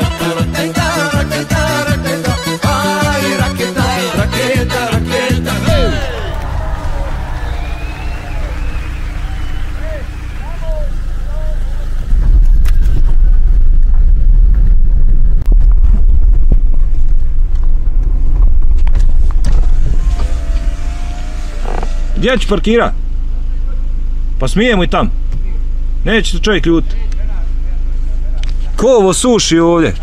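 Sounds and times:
car rumbling on gravel road: 5.4 - 23.5.

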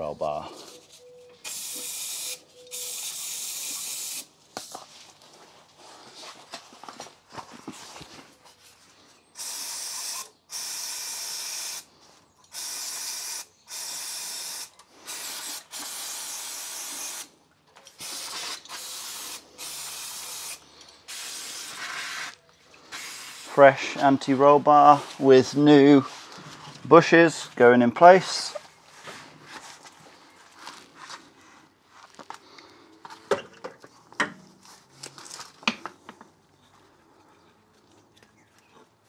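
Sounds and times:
aerosol spray hissing: 1.5 - 4.3, 18.0 - 22.3.

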